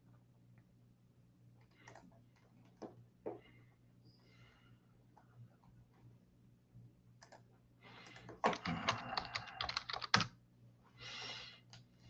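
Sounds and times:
typing on computer keyboard: 0:08.1 - 0:10.3.

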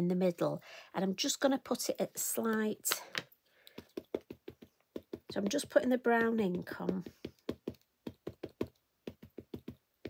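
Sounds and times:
ink pad tapping on plastic block: 0:03.7 - 0:09.8.

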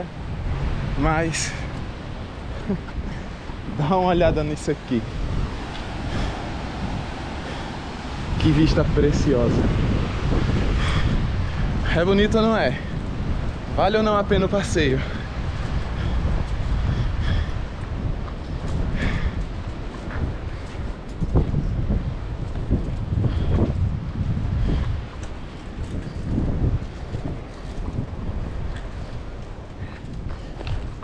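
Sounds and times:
wind buffeting microphone: 0:00.0 - 0:31.0.

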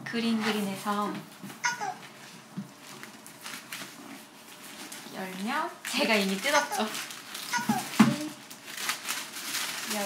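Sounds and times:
tissue paper rustling: 0:02.0 - 0:10.0.

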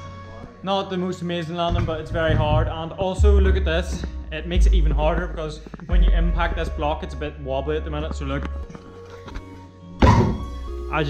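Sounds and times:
background music: 0:00.0 - 0:11.0
heavy thunk with ringing tail: 0:01.7 - 0:06.6.

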